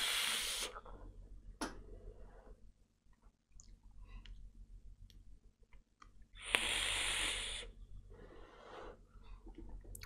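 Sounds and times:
e-cigarette airflow hissing: 0:00.0 - 0:00.8, 0:06.4 - 0:07.7.

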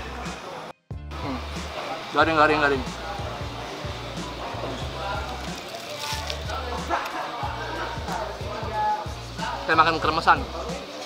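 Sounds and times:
music with pulsing bass: 0:00.9 - 0:10.8.

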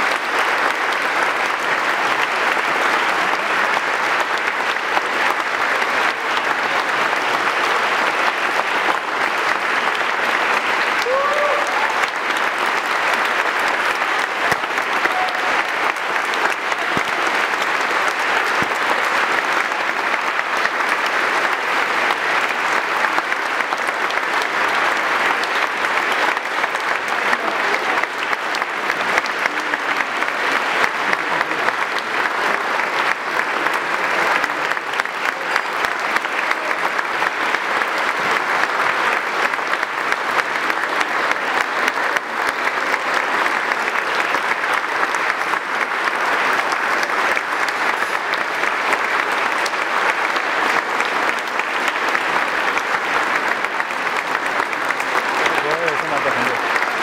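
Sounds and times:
audience applauding: 0:00.0 - 0:57.0
audience cheering: 0:05.8 - 0:21.8.

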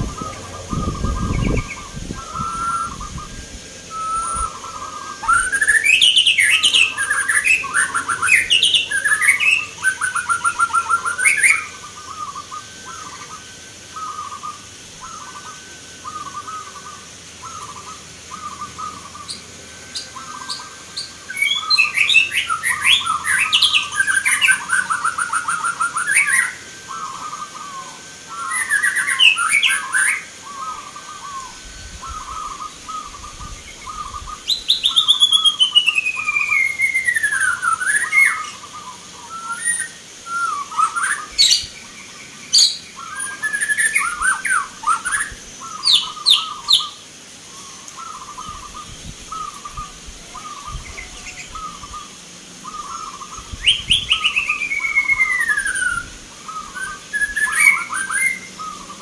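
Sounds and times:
doves cooing: 0:00.0 - 0:59.0
fast trilled bird calls: 0:00.0 - 0:59.0.

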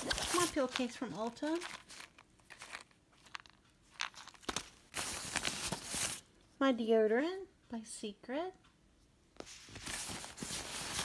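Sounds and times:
rustling inside fabric bag: 0:00.0 - 0:06.3, 0:09.5 - 0:11.0.

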